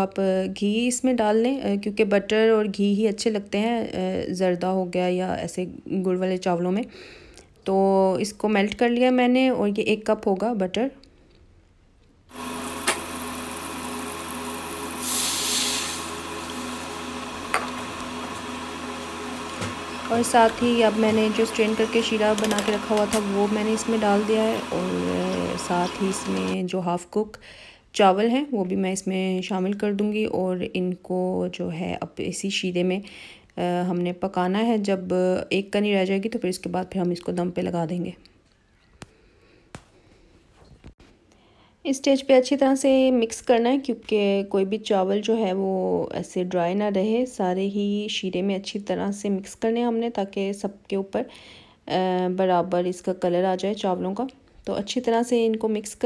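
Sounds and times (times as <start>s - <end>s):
butter sizzling in a pan: 12.3s - 26.5s
syrup poured hissing: 14.9s - 16.2s.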